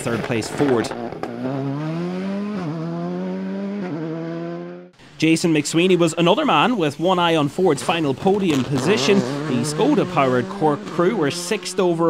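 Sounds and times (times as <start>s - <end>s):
rally car engine pulling hard: 0.0s - 4.9s, 7.7s - 12.0s.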